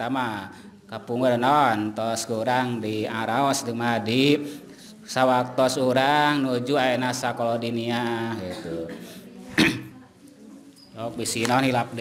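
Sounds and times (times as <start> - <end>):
person coughing: 8.4 - 10.0.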